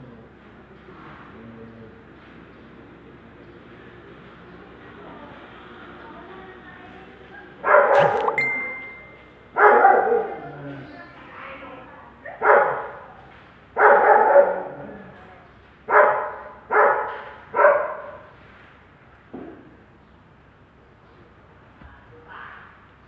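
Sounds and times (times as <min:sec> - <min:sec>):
dog barking: 0:07.6 - 0:08.3, 0:09.6 - 0:10.5, 0:12.3 - 0:13.1, 0:13.8 - 0:14.8, 0:15.9 - 0:18.3.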